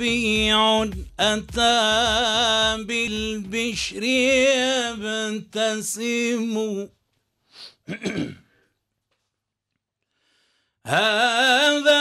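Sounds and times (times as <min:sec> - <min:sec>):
man clearing his throat: 0:07.8 - 0:08.6.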